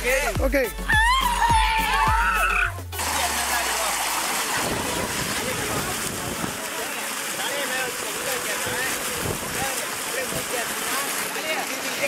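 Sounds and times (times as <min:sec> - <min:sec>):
water gushing from a pipe: 0:01.1 - 0:12.0.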